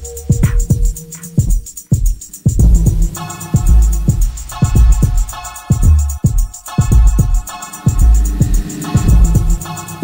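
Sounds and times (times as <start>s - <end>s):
electronic kick drum: 0.0s - 10.0s
hi-hat ticks: 0.0s - 10.0s.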